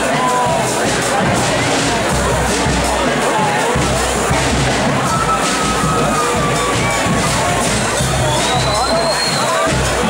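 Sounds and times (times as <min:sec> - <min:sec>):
brass and drum band playing: 0:00.0 - 0:10.0
crowd cheering: 0:00.0 - 0:10.0.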